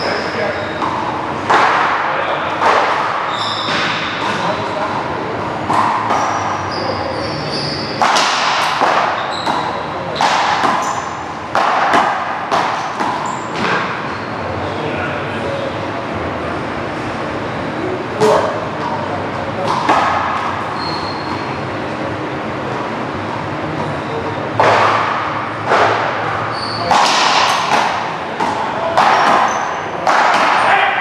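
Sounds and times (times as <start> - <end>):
sneakers squeaking on court: 0.0 - 1.2, 3.2 - 4.2, 6.0 - 8.0, 9.0 - 11.3, 12.8 - 14.4, 20.4 - 21.7, 26.4 - 27.7, 29.2 - 30.0
ball hitting wall and floor: 0.7 - 6.6, 7.7 - 14.2, 19.6 - 21.5, 24.5 - 30.8
paddles smacking a hard ball: 0.8 - 4.5, 8.0 - 14.0, 19.6 - 20.6, 24.6 - 30.7.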